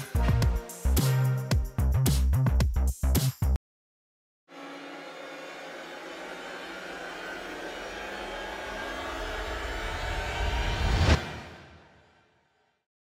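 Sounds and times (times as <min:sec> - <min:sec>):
hissing riser swell: 0:04.5 - 0:12.1
low rumble: 0:08.0 - 0:11.9.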